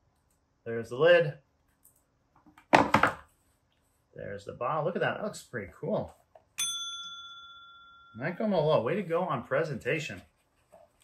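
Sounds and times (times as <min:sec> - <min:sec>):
bright bell ding: 0:06.6 - 0:08.3.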